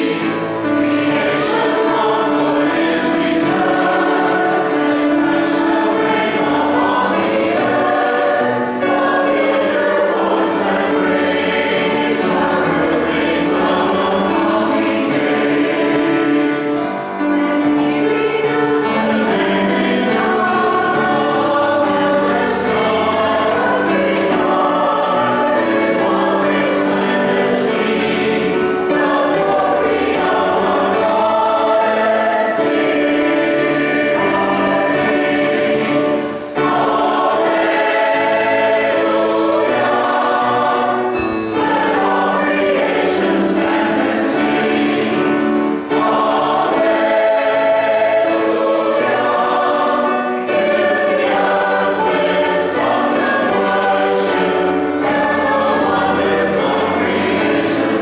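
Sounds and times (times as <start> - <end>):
church choir singing: 0.0 - 58.0.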